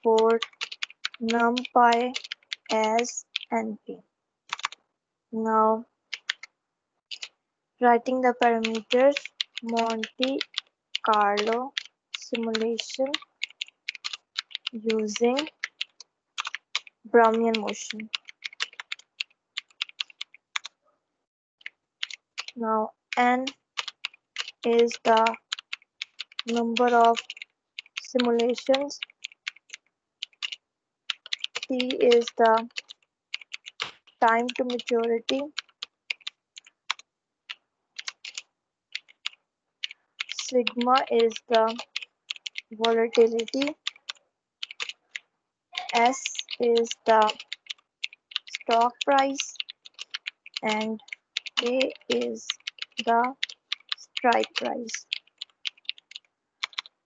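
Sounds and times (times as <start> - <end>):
keyboard typing clicks: 0.0 - 3.6, 4.5 - 4.8, 6.1 - 6.5, 7.1 - 7.3, 8.1 - 20.7, 21.6 - 45.2, 45.8 - 57.0.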